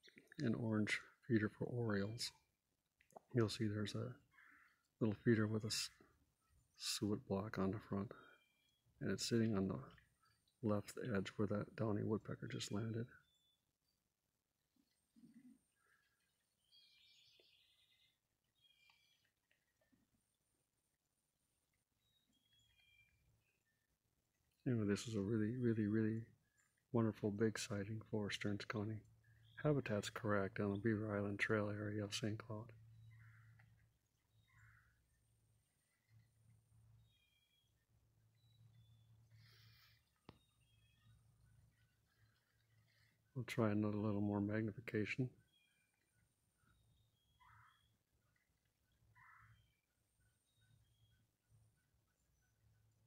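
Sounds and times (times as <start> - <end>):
faint short bird calls: 4.2 - 4.9, 32.8 - 35.2, 45.4 - 51.2.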